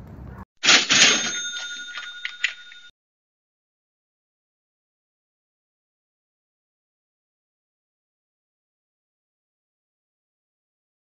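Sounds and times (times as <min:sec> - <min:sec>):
cash register bell ringing: 0:00.6 - 0:02.9
cash register clatter: 0:00.6 - 0:02.9.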